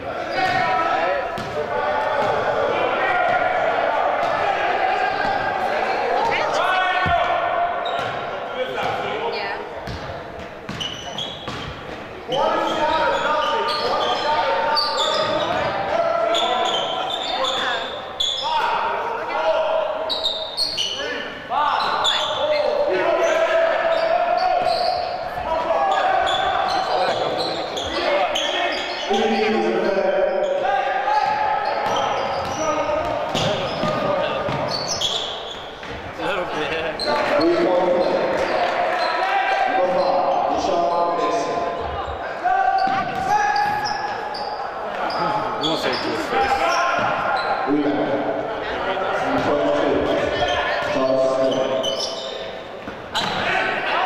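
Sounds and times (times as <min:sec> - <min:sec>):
players' raised voices: 0:00.0 - 0:54.0
basketball bouncing on hardwood: 0:01.4 - 0:01.6, 0:32.4 - 0:34.7.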